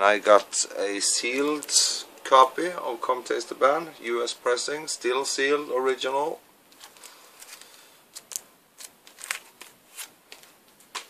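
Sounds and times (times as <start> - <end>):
plastic wrap crinkling: 6.7 - 11.0.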